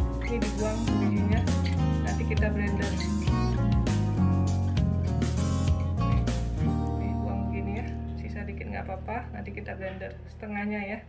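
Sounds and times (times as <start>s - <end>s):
guitar music over bass: 0.0s - 8.9s.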